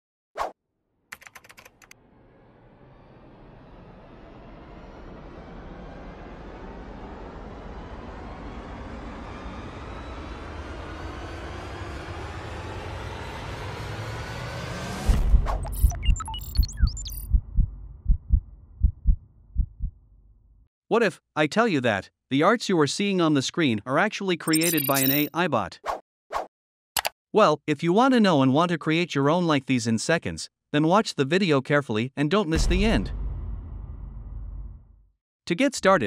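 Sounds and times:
computer keyboard typing: 0:01.1 - 0:02.0
electronic glitch chirps: 0:15.6 - 0:17.3, 0:24.5 - 0:25.3
heartbeat thumps: 0:16.6 - 0:20.0.

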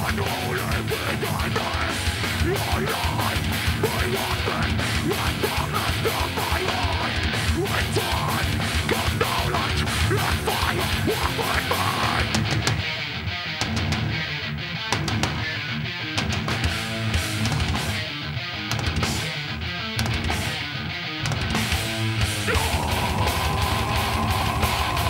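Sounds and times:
heavy metal band playing: 0:00.0 - 0:25.0.

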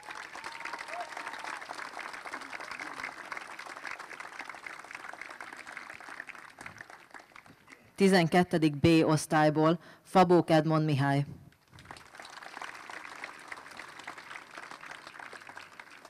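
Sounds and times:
audience applauding: 0:00.0 - 0:08.0, 0:11.6 - 0:16.0.

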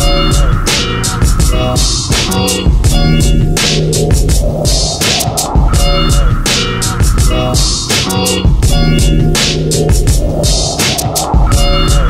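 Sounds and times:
electronic hip-hop beat: 0:00.0 - 0:12.0
rising noise sweep: 0:00.0 - 0:12.0.

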